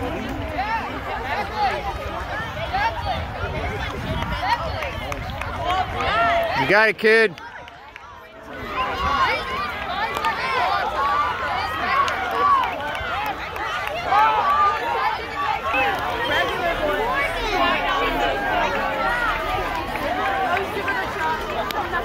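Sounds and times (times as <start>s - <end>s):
crowd babble: 0.0s - 22.0s.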